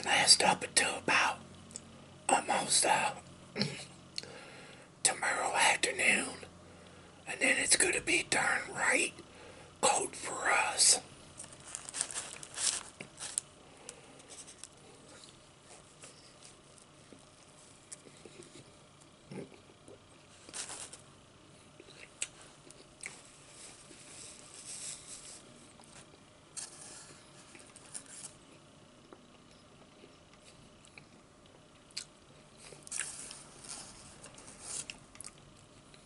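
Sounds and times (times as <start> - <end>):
person chewing potato chips: 11.4 - 18.6, 31.8 - 36.0.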